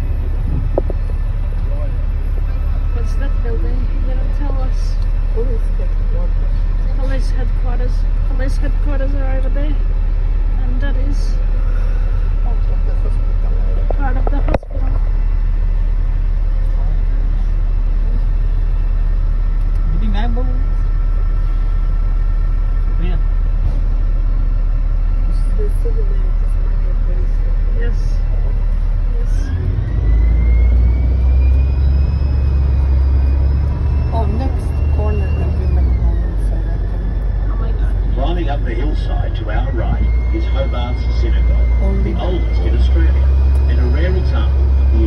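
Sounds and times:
bus engine rumble: 0.0 - 45.0
drivetrain whine: 0.0 - 45.0.

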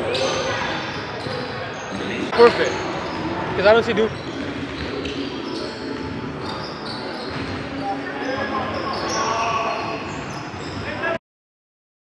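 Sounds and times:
sneaker squeaks: 0.0 - 11.2
players calling out: 1.2 - 11.1.

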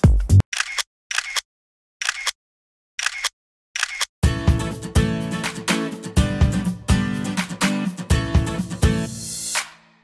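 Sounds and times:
camera shutter sound effect: 0.5 - 2.4, 3.0 - 4.1.

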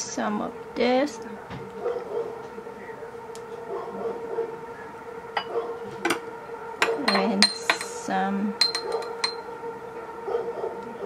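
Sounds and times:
steady background hum: 0.0 - 11.0
metal spoon clinking glass jar: 8.6 - 9.4.

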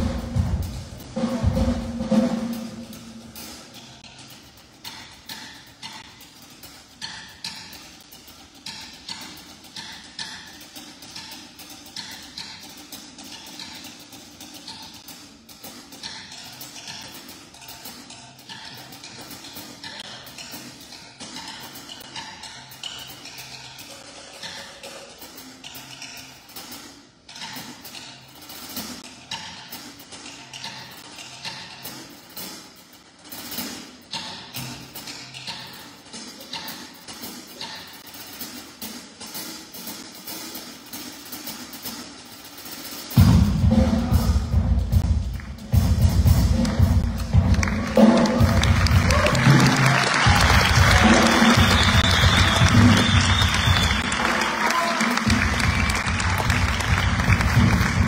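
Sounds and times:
drum kit and cymbals played quietly: 0.0 - 58.0.

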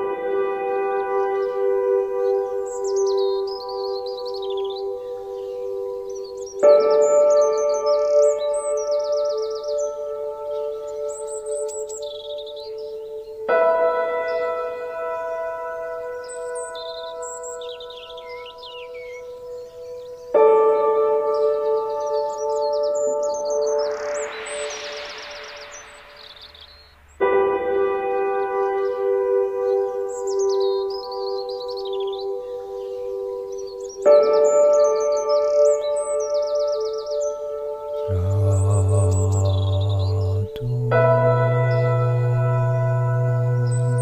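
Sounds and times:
birds chirping: 0.0 - 13.6, 14.3 - 44.0
meditation music ringing tones: 0.0 - 44.0
hissing whoosh: 24.2 - 27.2.

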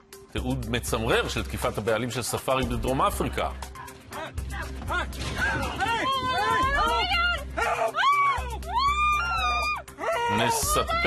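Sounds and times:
background music: 0.0 - 11.0
people screaming and shouting: 3.8 - 11.0.

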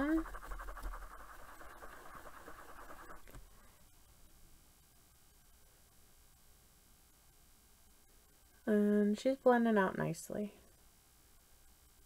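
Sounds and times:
brush scrubbing on sponge: 0.0 - 3.4.

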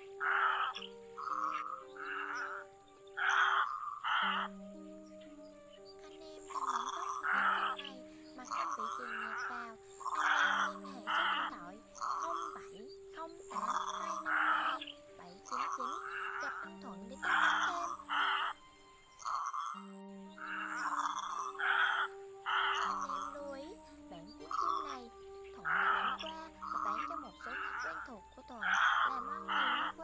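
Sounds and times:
background music: 0.0 - 30.0
egrets croaking calls: 0.0 - 30.0.

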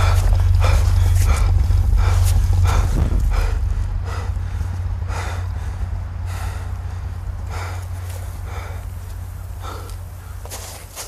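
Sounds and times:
man panting hard: 0.0 - 11.0
steady low rumble: 0.0 - 11.0.

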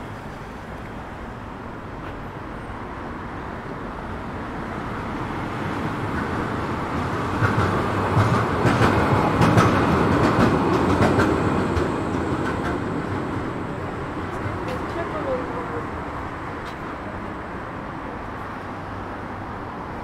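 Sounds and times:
tram rumbling past: 0.0 - 20.0
wheels clicking over track: 7.0 - 13.6.

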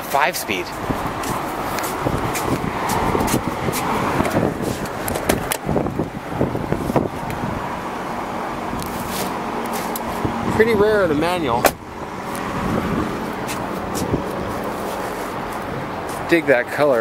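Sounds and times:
road traffic noise: 0.0 - 17.0.

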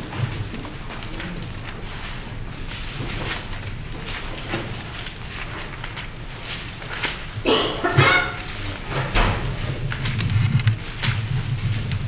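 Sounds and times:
book pages rustling: 0.0 - 7.4, 9.4 - 12.0
low room noise: 0.0 - 12.0.

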